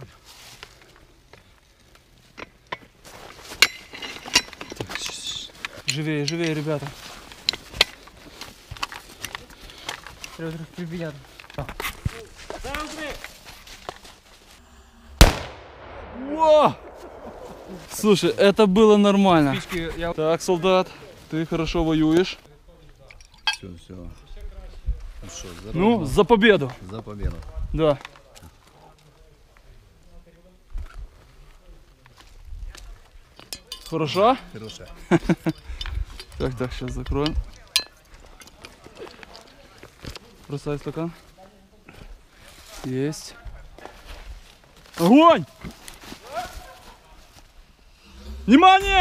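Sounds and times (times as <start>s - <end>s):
gear handling clicks and knocks: 3.6s - 10.4s
mortar firing bang: 14.7s - 18.4s
glasses and bottle clinking: 23.1s - 23.7s.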